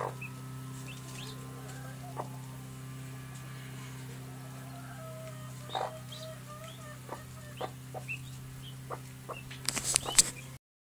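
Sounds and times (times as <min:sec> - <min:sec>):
chicks peeping: 0:00.0 - 0:10.6
steady low hum: 0:00.0 - 0:10.6
hen clucking softly: 0:00.9 - 0:02.6, 0:03.8 - 0:10.4.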